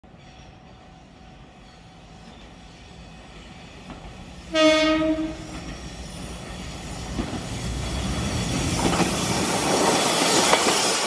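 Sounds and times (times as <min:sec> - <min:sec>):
diesel railcar rumble: 0:00.0 - 0:11.0.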